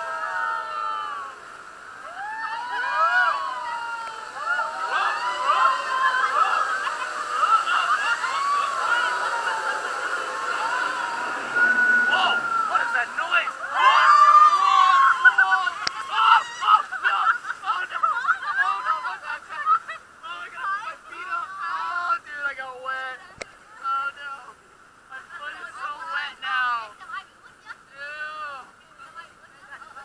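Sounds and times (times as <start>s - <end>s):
screams: 0.0s - 16.9s
people shrieking and yelling: 2.0s - 19.4s.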